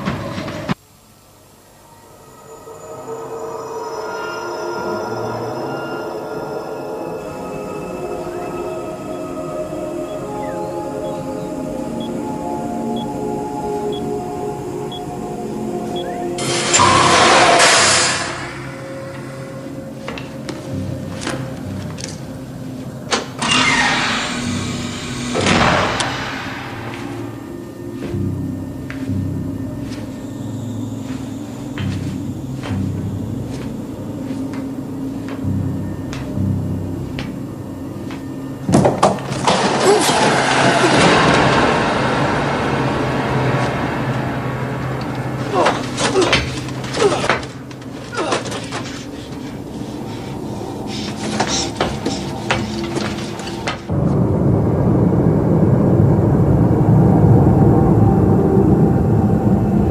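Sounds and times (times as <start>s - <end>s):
low pulsing ambient score: 0.8s - 59.9s.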